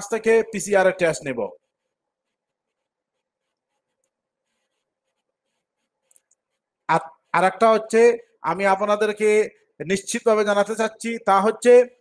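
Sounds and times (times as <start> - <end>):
man speaking: 0.0 - 1.6, 6.9 - 12.0.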